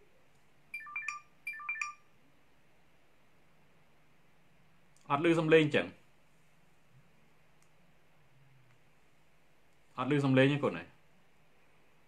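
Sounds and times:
electronic ringtone chime: 0.7s - 2.1s.

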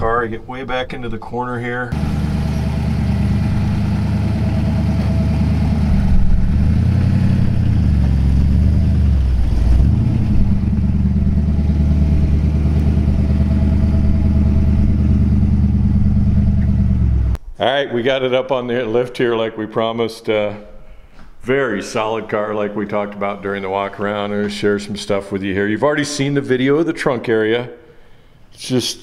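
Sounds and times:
car engine exhaust: 1.9s - 17.4s.

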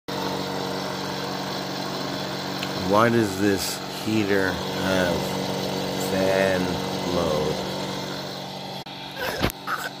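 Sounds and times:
heater fan humming: 0.1s - 10.0s.

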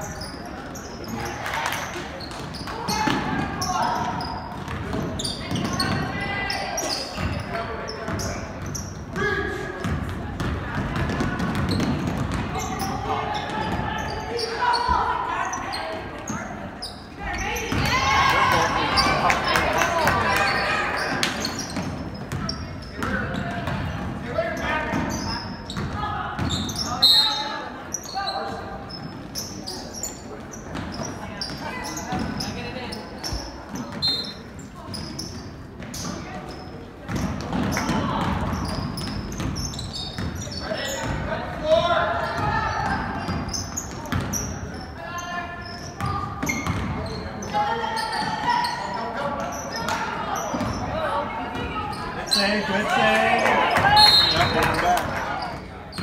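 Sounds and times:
voices of spectators and players: 0.0s - 56.0s
basketball bouncing on hardwood: 9.8s - 12.5s.

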